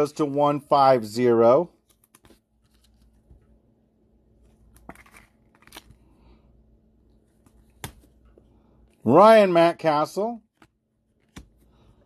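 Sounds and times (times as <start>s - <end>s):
trading cards clicking and sliding: 10.5s - 12.0s.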